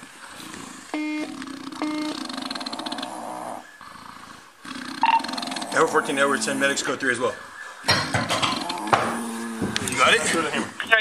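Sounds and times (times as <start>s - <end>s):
radio beep tone: 1.0s - 2.2s
garbled radio transmission noise: 5.0s - 11.0s.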